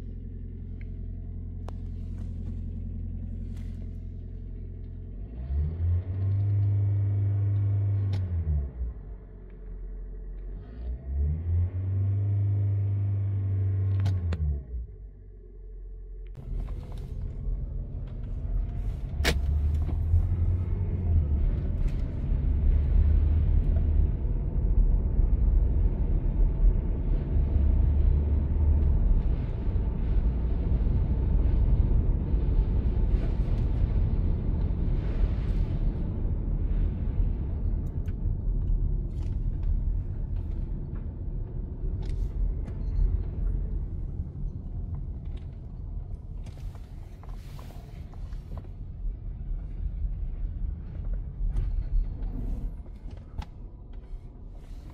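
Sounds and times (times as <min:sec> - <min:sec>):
tyres and drivetrain rumble: 0:00.0 - 0:54.9.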